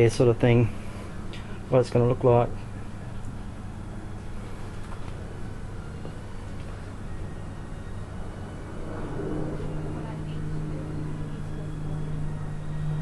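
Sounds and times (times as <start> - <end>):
low drone: 0.0 - 13.0
low mechanical hum: 0.0 - 13.0.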